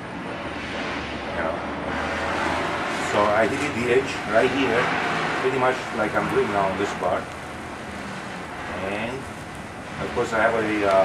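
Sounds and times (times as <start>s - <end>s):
gas torch burning: 0.0s - 11.0s.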